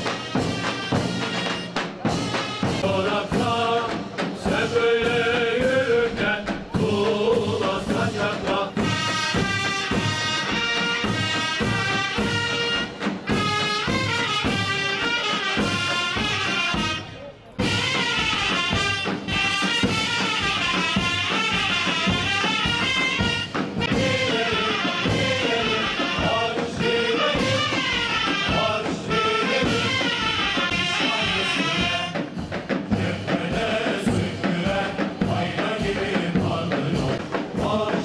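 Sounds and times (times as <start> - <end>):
trumpets: 0.0 - 6.0, 6.8 - 37.9
cymbals: 0.0 - 38.0
drum beats: 0.0 - 38.0.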